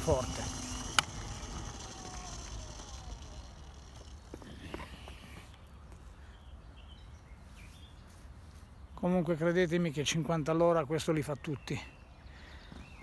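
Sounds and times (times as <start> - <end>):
electric scooter rolling over pavers: 0.0 - 6.0
faint motor whine: 0.0 - 6.8.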